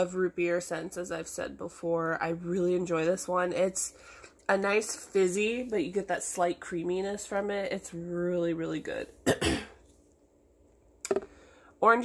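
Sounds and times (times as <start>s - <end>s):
woman clearing her throat: 9.2s - 9.8s.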